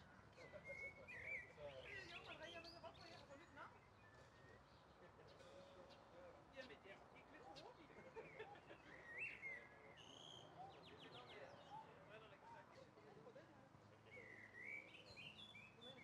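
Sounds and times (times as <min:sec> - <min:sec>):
distant chatter of people: 0:00.0 - 0:16.0
faint distant voices: 0:00.0 - 0:16.0
songbird calls: 0:00.3 - 0:02.8, 0:14.1 - 0:16.0
bird chirps: 0:00.3 - 0:03.1, 0:14.1 - 0:16.0.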